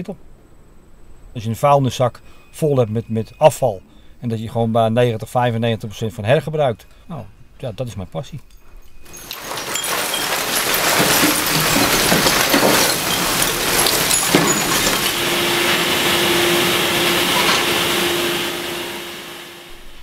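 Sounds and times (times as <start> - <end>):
falling refuse clattering: 9.0 - 19.2
low steady furnace hum: 10.4 - 20.0.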